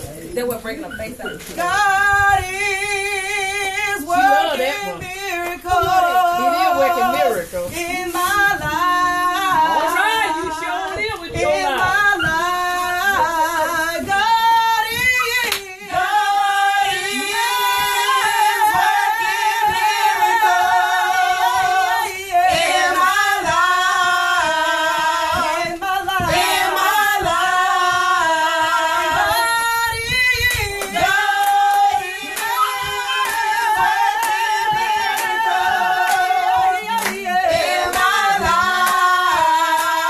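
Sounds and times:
women singing a cappella gospel: 0:00.0 - 0:40.0.

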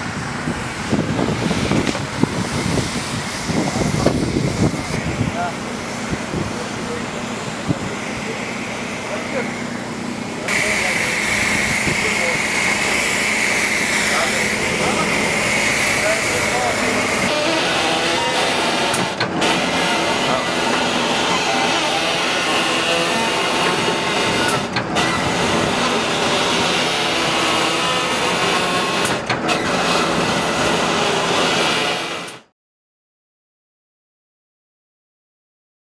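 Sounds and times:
vehicle engine running: 0:00.0 - 0:30.8
people's voices: 0:05.0 - 0:13.2, 0:13.9 - 0:24.8.

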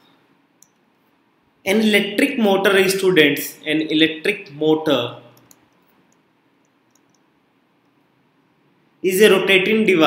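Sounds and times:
person speaking: 0:01.6 - 0:06.0.

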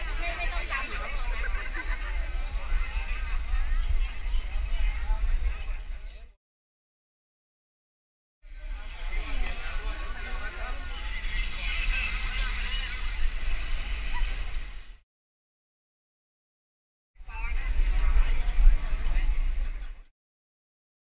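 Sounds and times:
wind rumbling on microphone: 0:00.0 - 0:06.3, 0:08.6 - 0:15.0, 0:17.2 - 0:20.1
people talking: 0:00.0 - 0:06.4, 0:08.5 - 0:14.8, 0:17.3 - 0:20.1.

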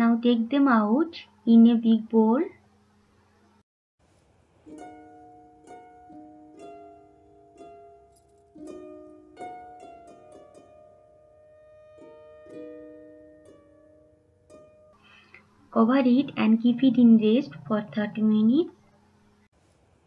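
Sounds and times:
soft plucked background music: 0:04.6 - 0:19.5.

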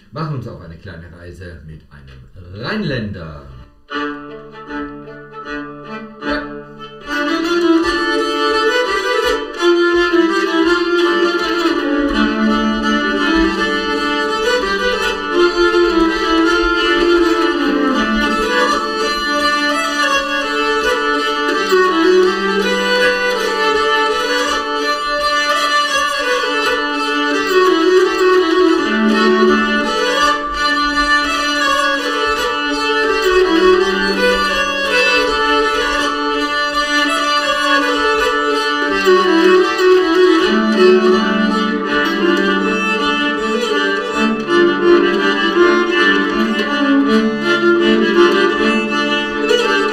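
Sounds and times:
keyed fiddles bowed in duo: 0:03.3 - 0:49.9.

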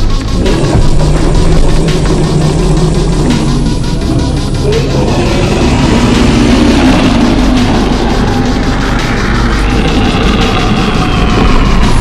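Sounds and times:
deep rumbling growl: 0:00.0 - 0:12.0.

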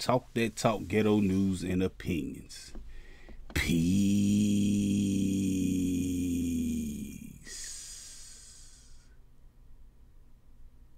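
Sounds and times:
man singing long note: 0:03.6 - 0:07.9.

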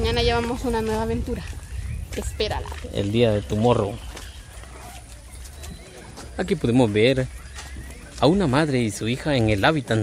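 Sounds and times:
wind rumbling on microphone: 0:00.0 - 0:05.9
faint footsteps: 0:00.0 - 0:10.0.

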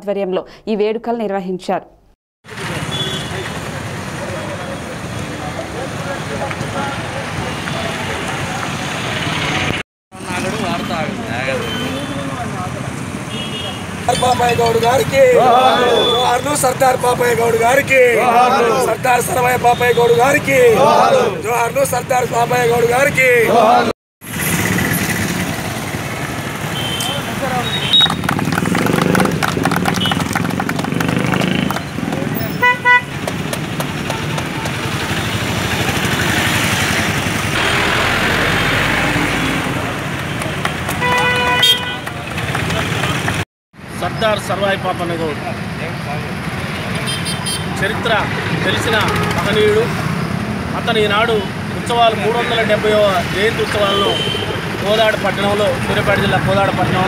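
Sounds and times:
road traffic hum: 0:02.4 - 0:57.0
vehicle horn toots: 0:02.9 - 0:03.4, 0:26.7 - 0:28.3, 0:32.5 - 0:33.2, 0:41.0 - 0:42.2
group clapping hands: 0:27.9 - 0:32.4, 0:33.2 - 0:35.1, 0:40.0 - 0:43.4.

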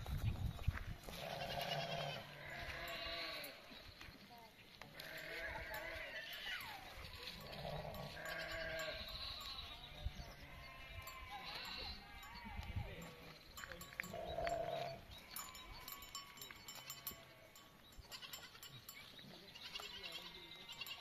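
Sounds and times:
sheep and goats bleating: 0:01.0 - 0:03.9, 0:04.8 - 0:21.0.

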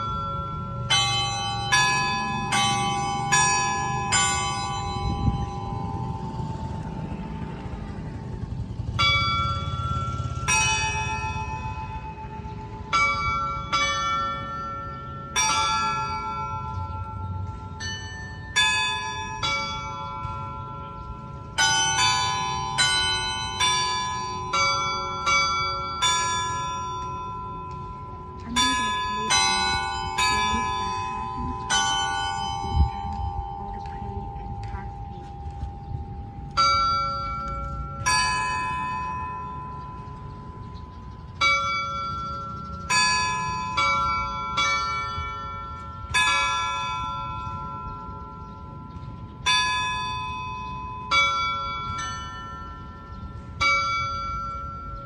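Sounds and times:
church bells ringing: 0:00.0 - 0:55.0.

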